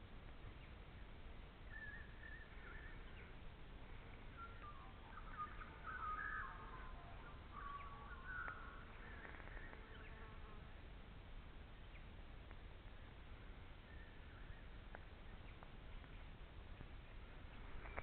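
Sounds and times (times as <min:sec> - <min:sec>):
faint background hiss: 0:00.0 - 0:18.0
birds warbling and chirping: 0:01.7 - 0:10.2.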